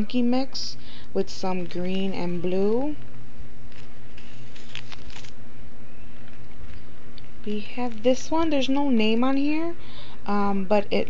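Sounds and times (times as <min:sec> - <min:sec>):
steady low hum: 0:00.0 - 0:11.0
plastic bags crinkling: 0:03.7 - 0:05.4.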